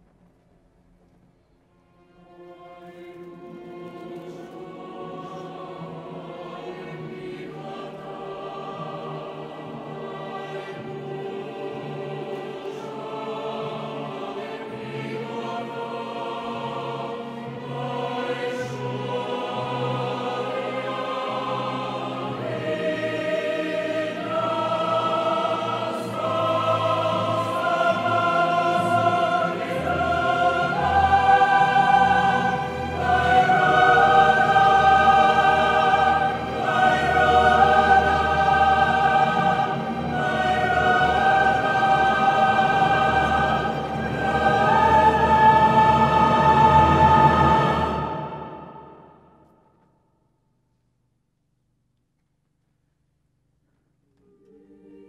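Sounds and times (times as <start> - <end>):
string orchestra: 1.5 - 49.3
choir singing held chords: 2.2 - 49.8, 54.3 - 55.0.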